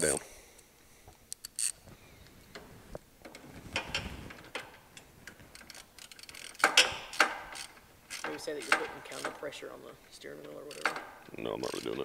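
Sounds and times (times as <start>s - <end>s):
ratchet wrench clicking: 5.5s - 9.4s, 10.7s - 12.0s.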